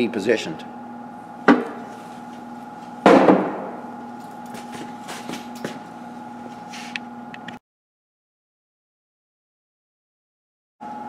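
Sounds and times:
steady hum: 0.0s - 7.6s
knocks on an engine block: 1.5s - 1.8s, 3.1s - 3.6s.

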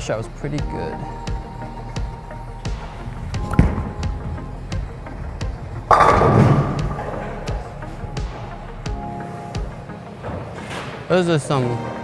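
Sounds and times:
background music with beat: 0.0s - 12.0s
bowling ball thudding on lane: 3.4s - 7.7s
bowling pins crashing: 3.4s - 8.5s.

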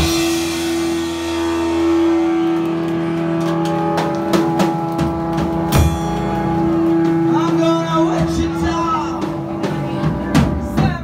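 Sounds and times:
electric guitar chord ringing: 0.0s - 10.2s
drum and cymbal hits: 0.0s - 11.0s.

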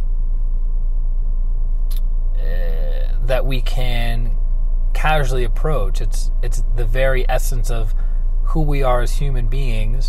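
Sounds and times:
car engine idling in cabin: 0.0s - 10.0s.

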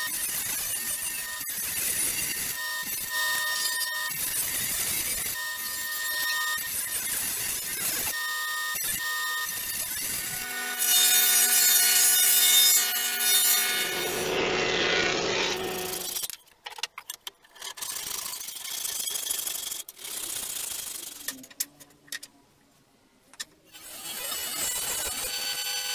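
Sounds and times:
woodworking machine cutting boards: 7.7s - 16.3s.

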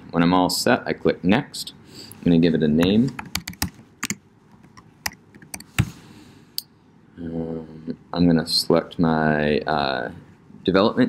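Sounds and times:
computer keyboard typing: 3.2s - 5.8s.

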